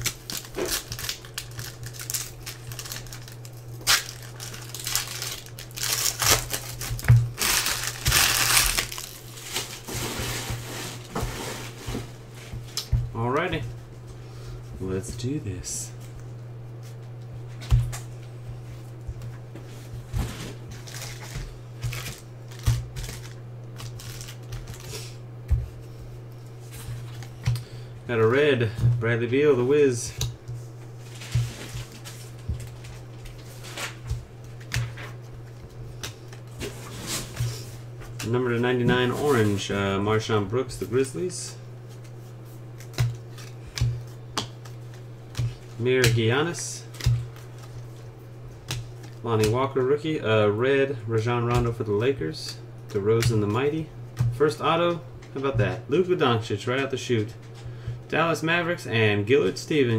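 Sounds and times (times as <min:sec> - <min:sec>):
foil wrapper crinkling: 0:00.0 - 0:11.7, 0:20.7 - 0:25.2
steady low hum: 0:00.0 - 0:59.9.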